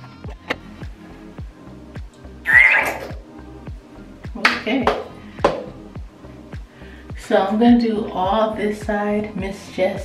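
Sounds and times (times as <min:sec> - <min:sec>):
background music with beat: 0:00.0 - 0:10.0
gel squelching from tube: 0:02.5 - 0:03.2.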